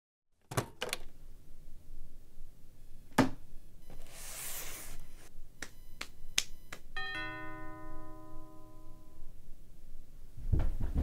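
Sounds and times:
bright ringing chord: 7.0 - 9.4.

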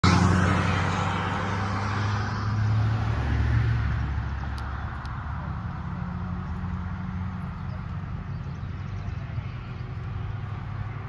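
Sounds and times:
tyre road noise: 0.0 - 11.0
vehicle engine humming: 0.0 - 11.0.

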